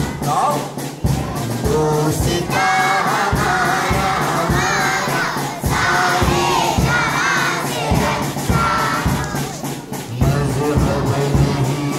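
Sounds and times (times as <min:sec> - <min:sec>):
children singing together: 0:00.0 - 0:11.9
steady low beat: 0:00.0 - 0:11.9.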